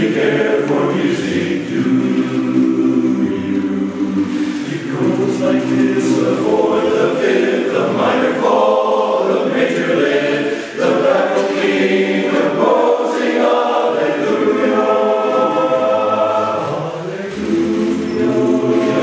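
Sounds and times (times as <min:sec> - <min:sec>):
men's chorus singing: 0:00.0 - 0:19.0.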